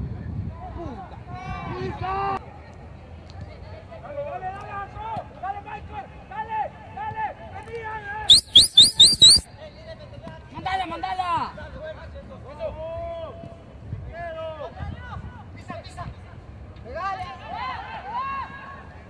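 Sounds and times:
high-pitched rising chirps: 8.3 - 9.4
players calling out: 8.3 - 9.4.

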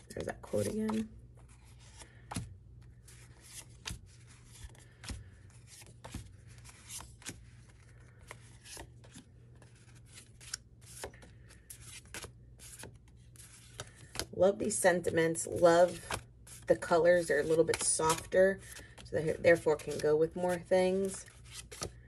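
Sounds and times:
paper cards flicking and sliding: 0.5 - 14.3, 15.8 - 22.0.

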